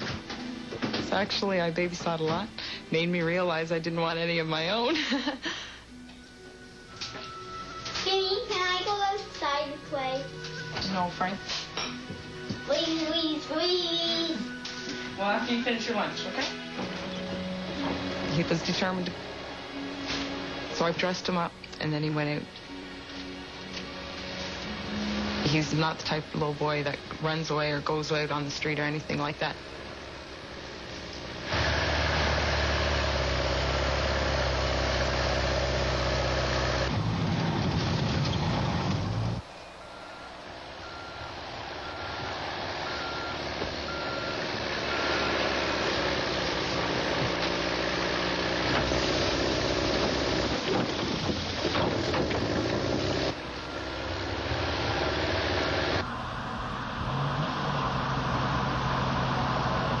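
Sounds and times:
truck engine running: 28.0s - 60.0s
reversing alarm beeping: 39.4s - 45.8s.

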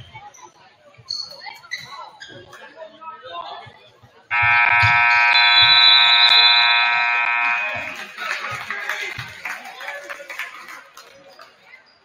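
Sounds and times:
scoreboard horn buzzing: 4.3s - 8.7s.

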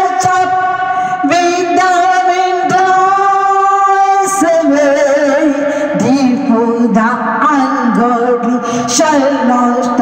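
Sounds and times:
person singing long notes: 0.0s - 10.0s.

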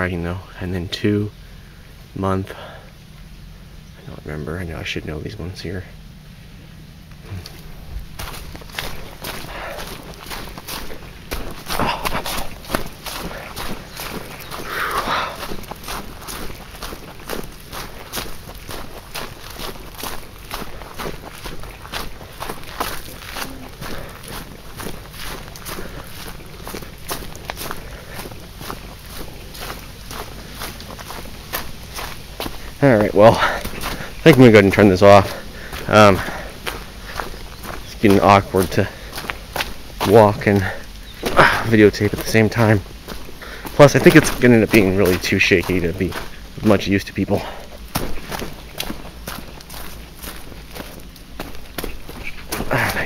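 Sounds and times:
footsteps on dry leaves: 6.0s - 53.0s.

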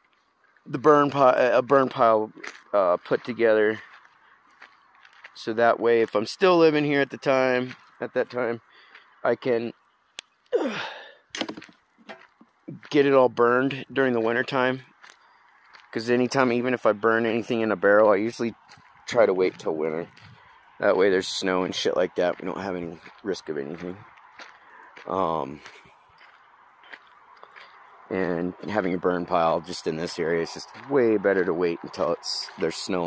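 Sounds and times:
footsteps on forest floor: 2.2s - 5.4s, 7.5s - 8.0s, 8.7s - 9.2s, 10.6s - 13.6s, 14.2s - 28.4s, 29.7s - 33.0s
twigs crunching: 3.8s - 5.4s, 11.3s - 12.6s
man sighing: 10.6s - 11.2s.

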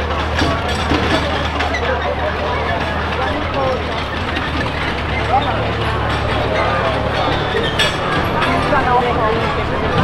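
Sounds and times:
crowd chatter: 0.0s - 10.0s
tractor engine idling: 0.0s - 10.0s.

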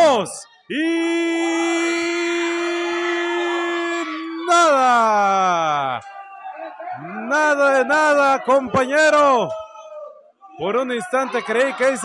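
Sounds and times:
commentator shouting long vowel: 7.0s - 9.5s.

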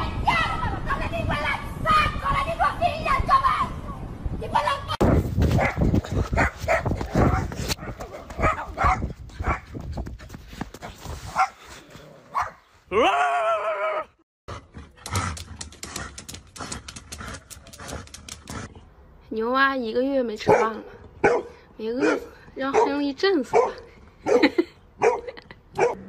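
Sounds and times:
dogs barking: 5.1s - 9.7s, 11.3s - 11.6s, 12.3s - 12.7s, 20.4s - 26.0s.

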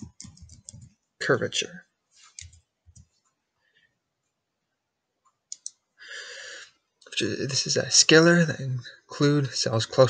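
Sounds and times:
computer mouse clicks: 0.0s - 0.9s, 2.3s - 3.2s, 5.3s - 5.8s.

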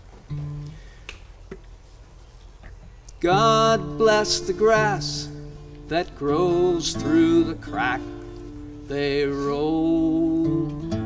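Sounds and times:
acoustic guitar note: 0.0s - 1.0s, 3.2s - 11.0s.

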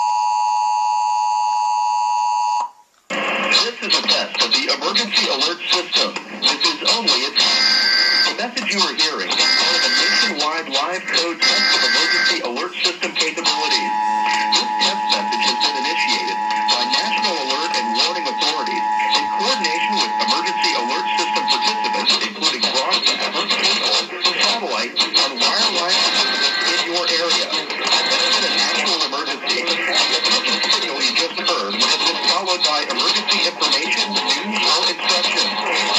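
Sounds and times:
garbled voices and music: 3.5s - 35.9s.

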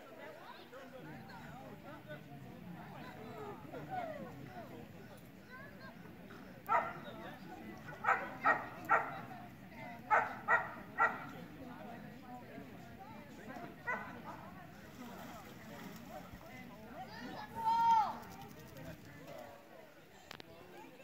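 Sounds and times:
dog barking: 6.7s - 7.0s, 8.0s - 9.2s, 10.1s - 11.3s.

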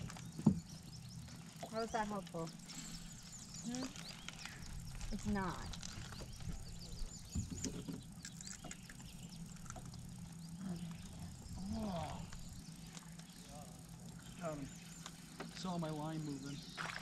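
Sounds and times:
low steady hum: 0.0s - 17.0s
small birds chirping: 0.0s - 17.0s
soft voices: 3.6s - 4.0s, 10.6s - 12.4s.

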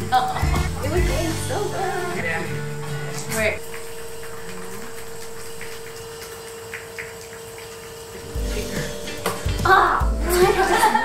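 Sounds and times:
steady hum: 0.0s - 6.3s, 8.1s - 11.0s.

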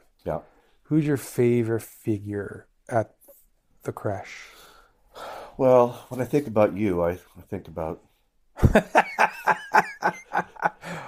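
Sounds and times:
man laughing: 8.6s - 11.0s.

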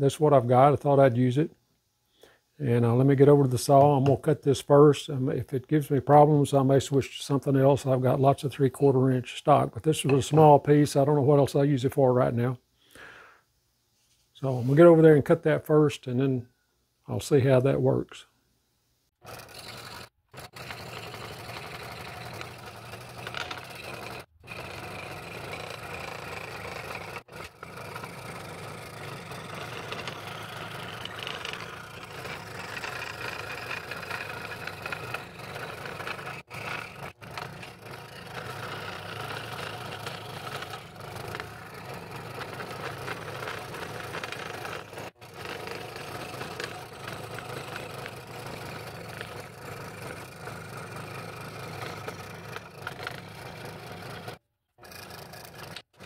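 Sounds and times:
scroll saw cutting wood: 5.9s - 11.4s, 19.2s - 56.0s.

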